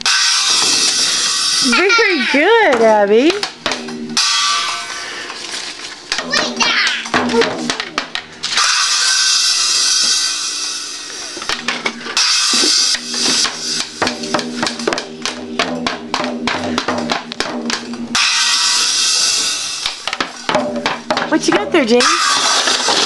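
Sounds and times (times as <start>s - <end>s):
cymbal crashes: 4.2s - 5.3s, 8.6s - 11.6s, 12.2s - 14.4s, 17.4s - 20.6s.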